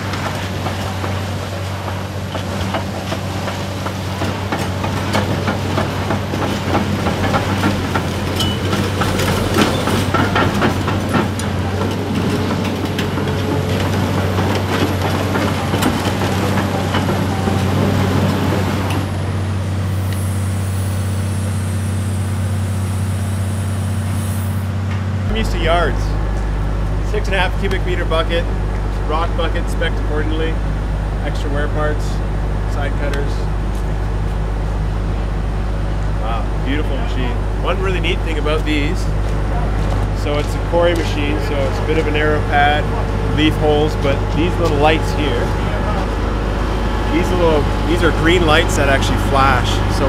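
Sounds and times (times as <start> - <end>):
machine clanking and knocking: 0.0 - 19.8, 36.6 - 50.0
excavator diesel engine running: 0.0 - 50.0.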